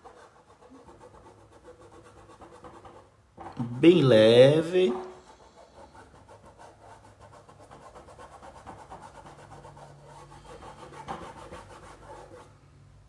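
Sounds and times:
paintbrush scrubbing fabric: 0.0 - 3.1, 5.2 - 12.5.

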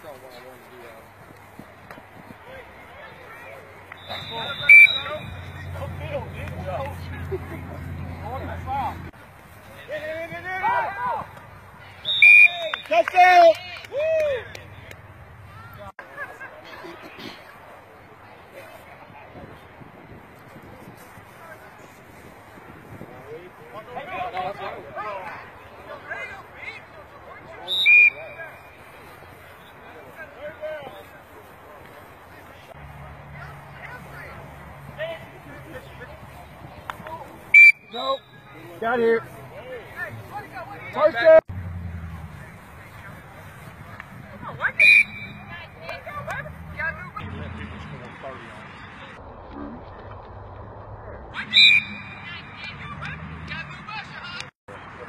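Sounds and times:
referee's whistle blast: 4.0 - 5.7, 12.0 - 13.0, 27.7 - 28.4, 37.5 - 38.5, 44.8 - 45.6, 51.5 - 52.4.

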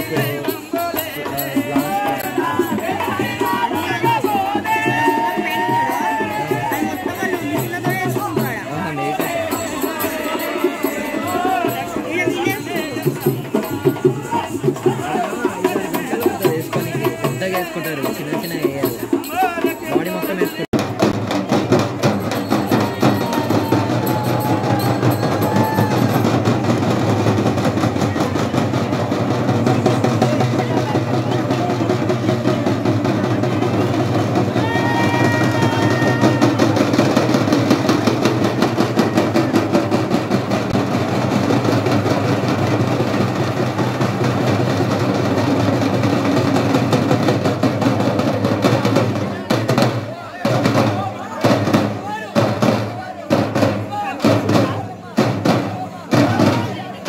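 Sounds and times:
fast folk drumming: 0.0 - 57.0.

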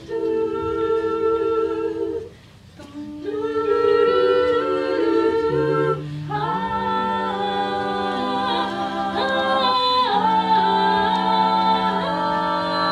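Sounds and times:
women singing close harmony: 0.0 - 12.9.

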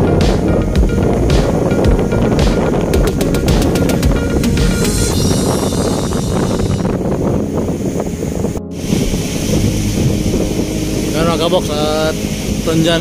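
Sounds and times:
sea surf: 0.0 - 13.0
wind buffeting microphone: 0.0 - 13.0.

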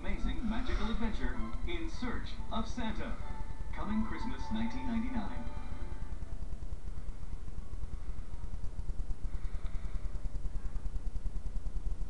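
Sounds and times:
faint hiss: 0.0 - 12.0
low hum and rumble: 0.0 - 12.0.

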